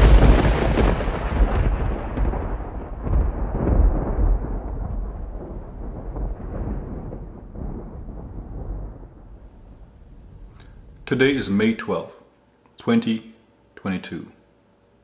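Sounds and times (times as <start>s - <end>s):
deep thunder-like rumble: 0.0s - 11.7s.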